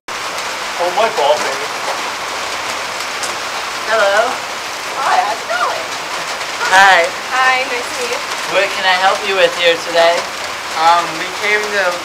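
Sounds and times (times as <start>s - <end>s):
steady hiss: 0.2s - 12.0s.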